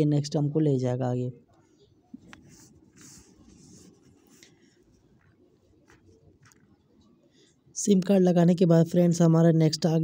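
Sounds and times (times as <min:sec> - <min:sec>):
faint rustling and scratching: 0:01.6 - 0:07.2
soft hissy touches: 0:02.2 - 0:06.6.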